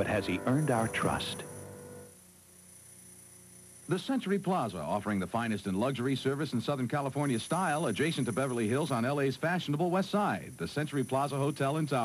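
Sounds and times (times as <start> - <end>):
man speaking: 0.0 - 1.5, 3.9 - 12.0
low hum with hiss: 0.0 - 12.0.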